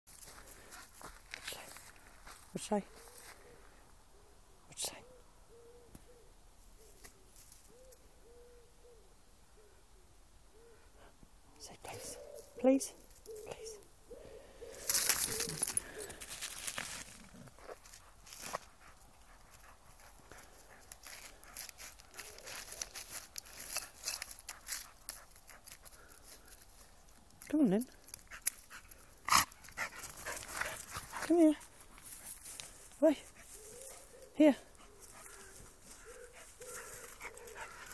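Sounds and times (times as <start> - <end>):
dog panting: 17.5 - 22.5, 28.3 - 32.5, 33.2 - 37.9.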